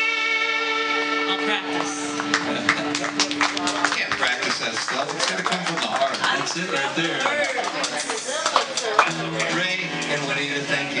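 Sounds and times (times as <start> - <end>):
people talking: 1.3 - 11.0.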